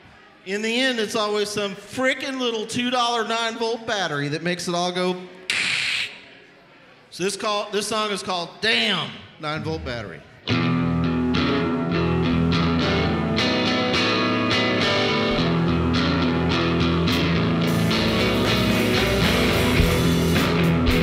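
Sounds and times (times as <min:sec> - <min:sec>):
bass guitar: 0:10.5 - 0:21.0
drums: 0:10.5 - 0:21.0
electric guitars: 0:10.5 - 0:21.0.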